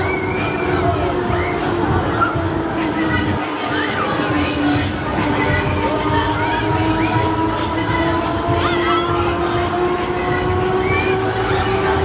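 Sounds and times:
fairground ride music: 0:00.0 - 0:12.0.

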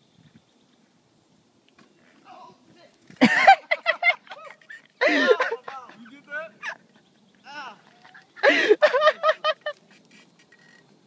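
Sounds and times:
men laughing: 0:03.2 - 0:07.0, 0:07.8 - 0:10.0
men's wavering cries: 0:03.5 - 0:09.3
man yelling: 0:07.5 - 0:07.9.

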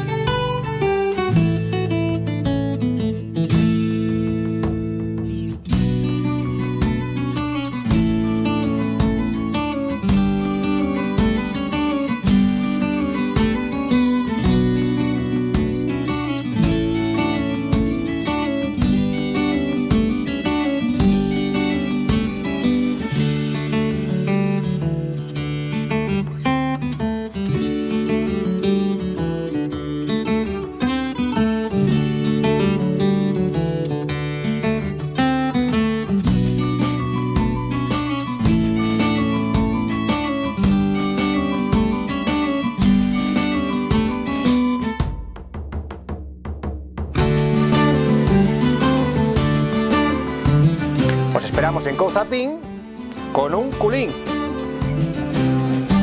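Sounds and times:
acoustic guitar strumming: 0:00.0 - 0:46.1, 0:47.0 - 0:56.0.

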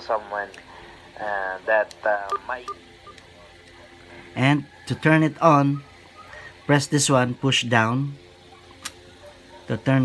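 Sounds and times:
radio high beeps: 0:02.2 - 0:03.2.

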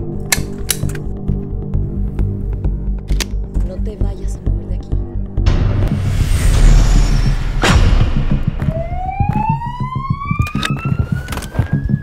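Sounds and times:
deep low rumble: 0:01.6 - 0:10.1
sharp hit: 0:05.5 - 0:09.3
police siren wailing: 0:08.6 - 0:12.0.

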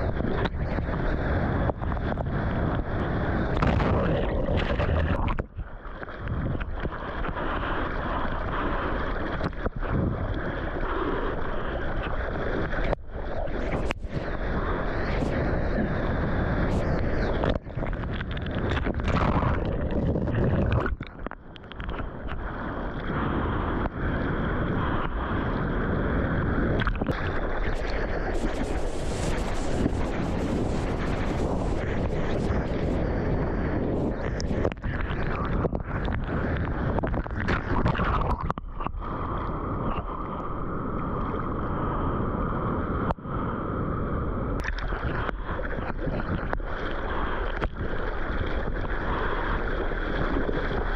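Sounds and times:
wind buffeting microphone: 0:00.0 - 0:08.6, 0:13.6 - 0:21.1, 0:23.1 - 0:50.9
water splashing around surfboard: 0:00.0 - 0:23.8, 0:26.7 - 0:41.5, 0:44.6 - 0:50.9.

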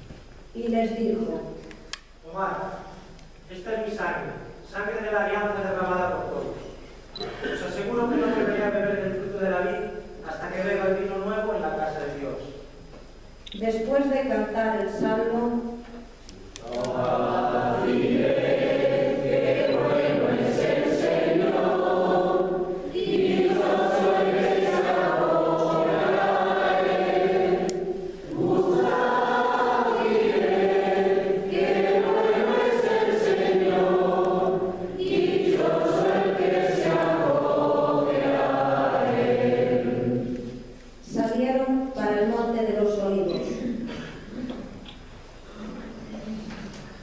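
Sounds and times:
choir singing: 0:16.7 - 0:40.7.

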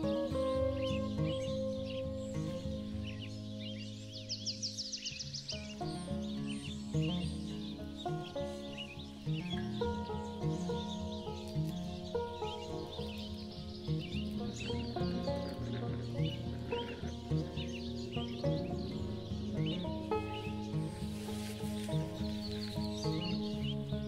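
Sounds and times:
slow instrumental music: 0:00.0 - 0:24.0
small birds chirping: 0:00.0 - 0:24.0.

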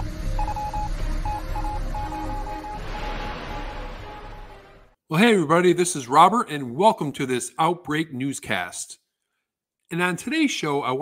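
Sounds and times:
short high electronic beeps: 0:00.4 - 0:04.6
low drone: 0:01.8 - 0:05.0.

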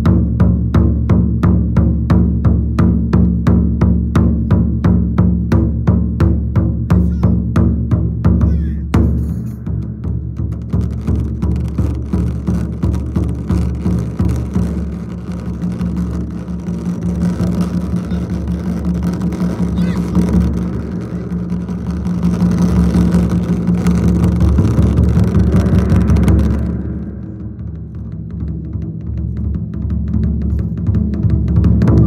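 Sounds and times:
fast drum roll on large drum: 0:00.0 - 0:32.0.

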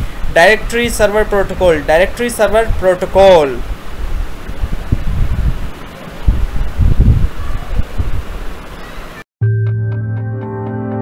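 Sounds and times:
wind noise on microphone: 0:00.0 - 0:08.9.

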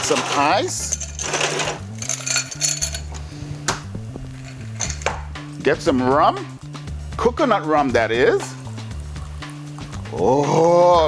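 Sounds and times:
ice cubes clinking in glass: 0:00.0 - 0:03.1, 0:04.4 - 0:05.1
background music with bass line: 0:00.0 - 0:11.0.

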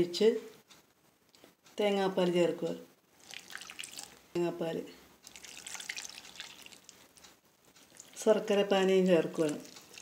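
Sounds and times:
liquid pouring into a pan: 0:03.2 - 0:04.2, 0:05.3 - 0:07.0, 0:07.9 - 0:08.2, 0:09.4 - 0:10.0.

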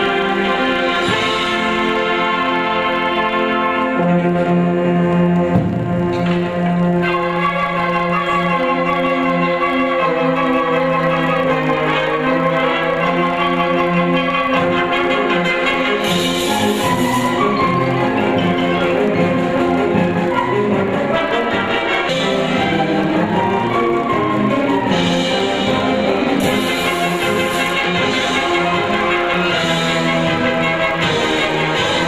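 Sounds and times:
concert band playing: 0:00.0 - 0:32.0
concert band playing chords: 0:04.0 - 0:07.8.

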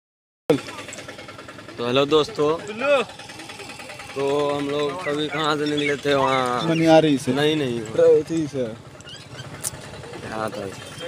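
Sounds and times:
vehicle engine rumbling: 0:00.5 - 0:11.0.

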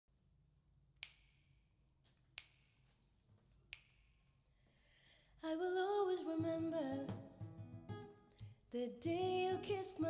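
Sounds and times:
finger snaps: 0:01.0 - 0:01.5, 0:02.3 - 0:02.9, 0:03.7 - 0:04.6.

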